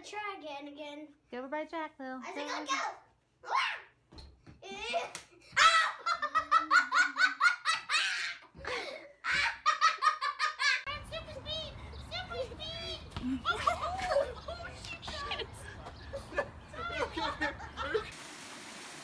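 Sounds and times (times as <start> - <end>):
young child giggling: 4.6 - 10.9.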